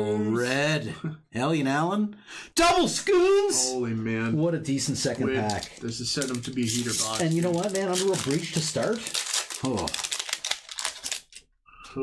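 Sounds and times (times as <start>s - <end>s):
foil wrapper crinkling: 5.3s - 11.4s.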